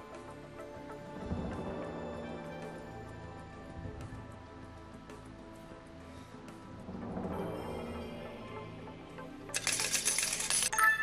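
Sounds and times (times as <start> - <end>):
jingling coin shimmer: 9.5 - 11.0
ringing chime: 9.6 - 11.0.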